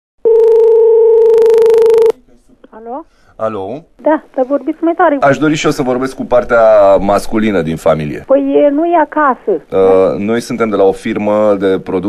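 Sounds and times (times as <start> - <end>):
telephone ringback tone: 0.2 - 2.2.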